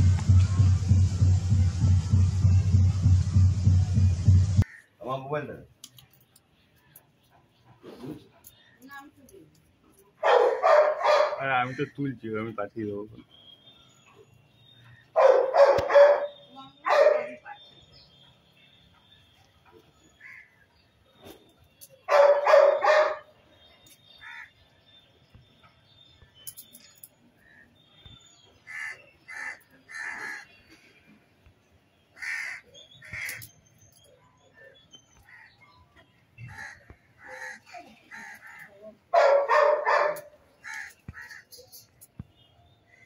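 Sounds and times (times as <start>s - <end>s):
crows cawing: 4.6s - 5.0s, 24.2s - 24.5s, 28.6s - 30.5s, 32.2s - 33.5s, 36.4s - 38.8s, 40.6s - 41.6s.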